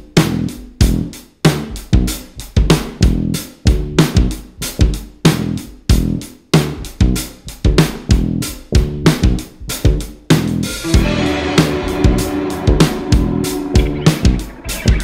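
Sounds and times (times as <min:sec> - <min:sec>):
drums beating: 0:00.0 - 0:15.0
instrumental band music: 0:00.0 - 0:15.0.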